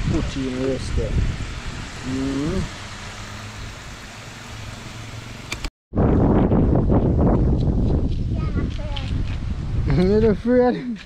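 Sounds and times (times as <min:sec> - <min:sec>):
wind buffeting microphone: 0:00.0 - 0:02.8, 0:05.9 - 0:11.0.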